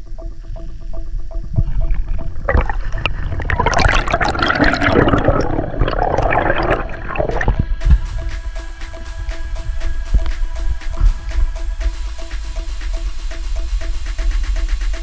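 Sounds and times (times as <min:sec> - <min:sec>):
background music: 0:00.0 - 0:15.0
underwater bubbles gurgling: 0:00.4 - 0:08.0.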